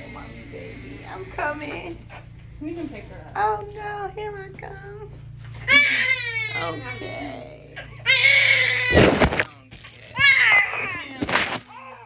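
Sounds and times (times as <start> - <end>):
baby crying: 5.6 - 9.4.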